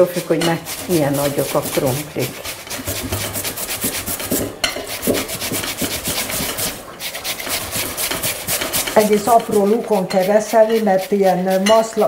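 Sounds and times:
potatoes grated on metal graters: 0.0 - 12.0.

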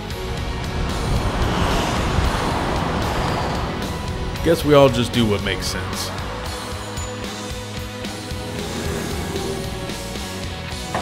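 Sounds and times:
background music: 0.0 - 11.0
truck passing by: 0.0 - 11.0.

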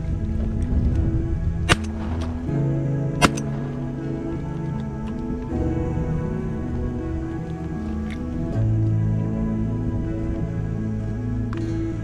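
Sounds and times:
background music with held notes: 0.0 - 12.0
shotgun shots: 1.7 - 2.5, 3.2 - 3.9.

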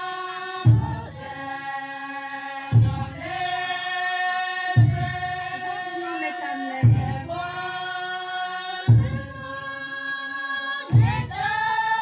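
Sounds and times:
women singing in unison: 0.0 - 12.0.

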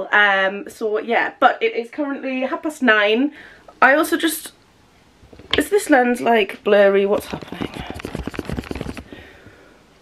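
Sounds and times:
scratchy rubbing on microphone: 7.0 - 9.2.

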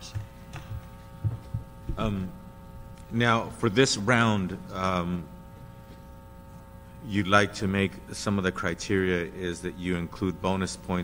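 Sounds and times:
soft low thumps: 0.0 - 2.2
electrical hum: 0.0 - 11.0.

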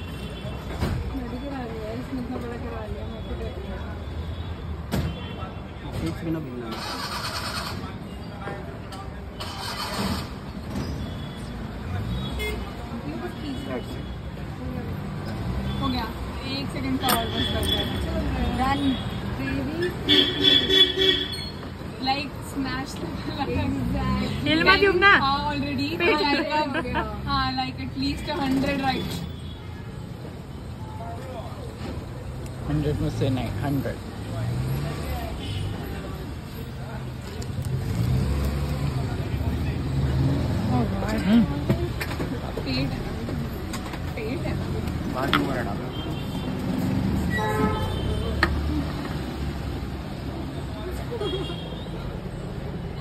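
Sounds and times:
low rumble of road traffic: 0.0 - 53.0.

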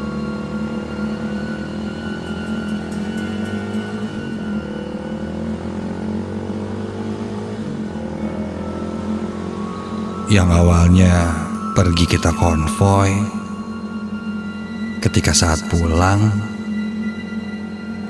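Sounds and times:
motorcycle engine accelerating: 0.0 - 10.6
soft background music: 0.0 - 18.0.

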